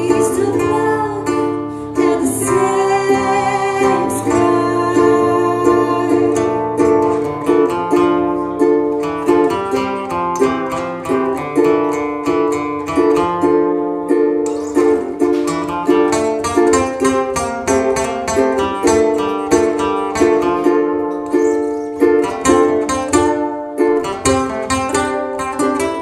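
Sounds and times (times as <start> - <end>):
acoustic guitar: 0.0 - 26.0
ukulele: 0.0 - 26.0.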